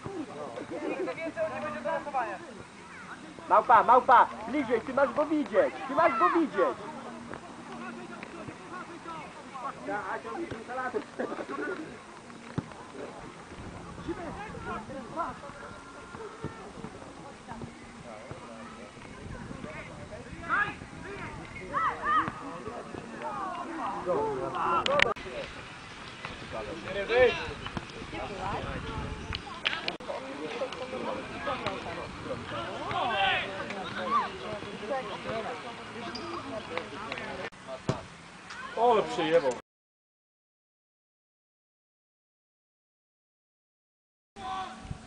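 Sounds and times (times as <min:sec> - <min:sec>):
players calling and shouting: 0:00.0 - 0:39.6, 0:44.4 - 0:44.9
people shouting: 0:21.7 - 0:22.5, 0:32.5 - 0:34.5.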